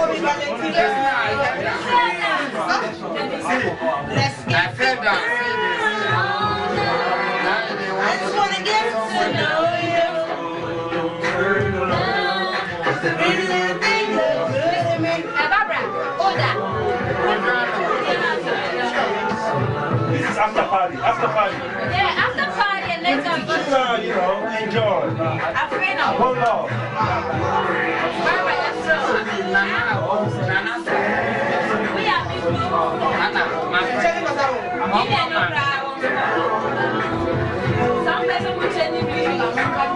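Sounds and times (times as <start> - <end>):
people chattering: 0.0 - 39.9.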